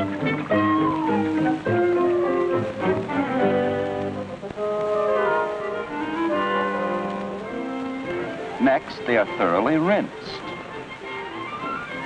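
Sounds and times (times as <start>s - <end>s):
orchestral cartoon music with brass: 1.2s - 12.0s.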